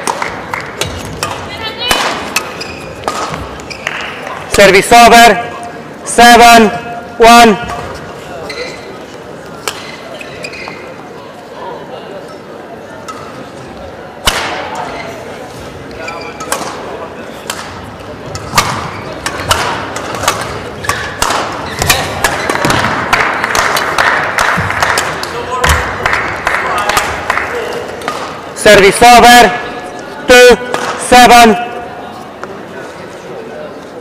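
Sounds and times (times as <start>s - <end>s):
rackets striking shuttlecock: 0.0s - 4.2s, 17.4s - 25.8s, 26.7s - 28.4s
murmur of hall noise: 0.0s - 34.0s.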